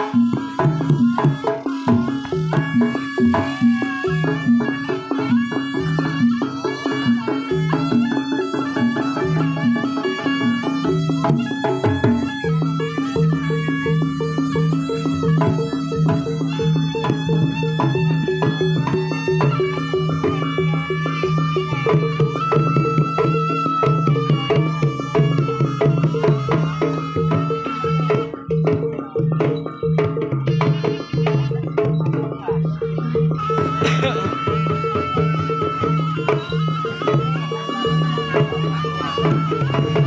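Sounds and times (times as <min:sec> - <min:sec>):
hand drums beating quickly: 0:00.0 - 0:40.0
high wavering melody: 0:00.0 - 0:40.0.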